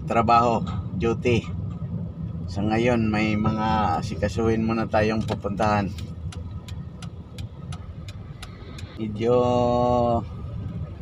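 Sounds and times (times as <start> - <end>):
car engine hum: 0.0 - 11.0
turn signal ticking: 0.0 - 11.0.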